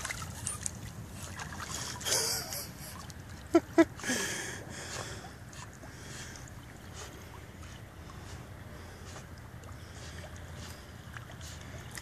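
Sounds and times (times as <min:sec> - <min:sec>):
dog paddling in water: 0:00.0 - 0:12.0.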